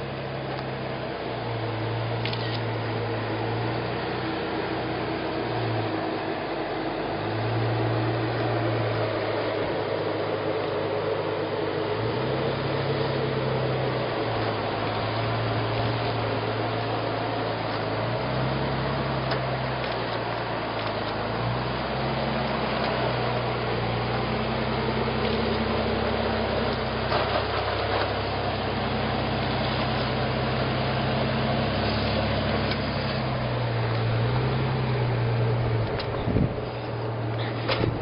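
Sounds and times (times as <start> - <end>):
car engine running at low revs: 0.0 - 38.0.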